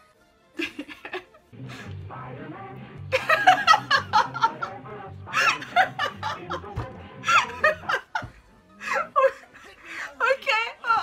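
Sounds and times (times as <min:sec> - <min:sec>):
background music: 0:00.0 - 0:11.0
woman laughing hard: 0:00.6 - 0:01.5, 0:03.1 - 0:09.9.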